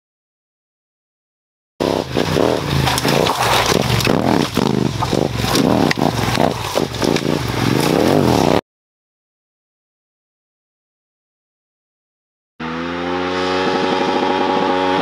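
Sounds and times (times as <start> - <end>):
motorcycle engine revving: 1.8 - 8.6, 12.6 - 15.0
stones clattering under tyres: 2.1 - 8.6.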